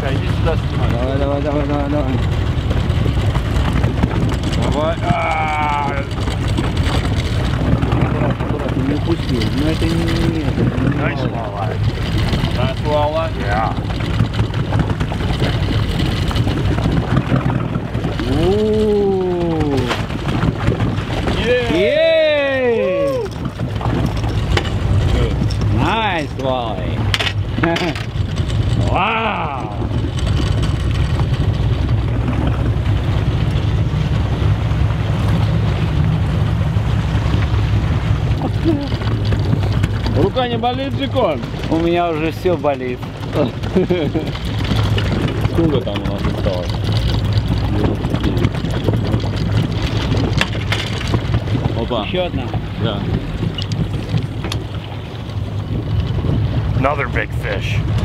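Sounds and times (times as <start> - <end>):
boat engine running: 0.0 - 58.0.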